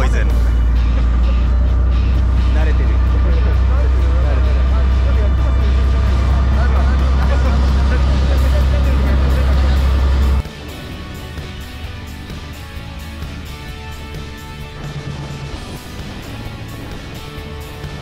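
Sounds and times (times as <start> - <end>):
background music: 0.0 - 18.0
boat engine drone: 0.0 - 18.0.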